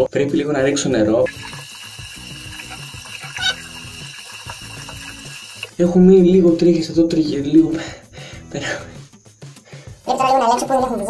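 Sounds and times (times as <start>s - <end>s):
tap running into sink: 1.3s - 5.8s
water splash: 1.3s - 5.8s.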